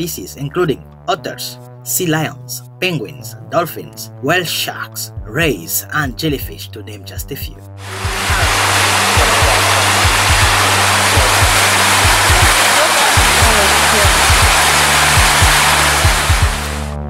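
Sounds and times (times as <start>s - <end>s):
background music with bass beat: 7.2s - 17.0s
water rushing over rock: 7.8s - 17.0s.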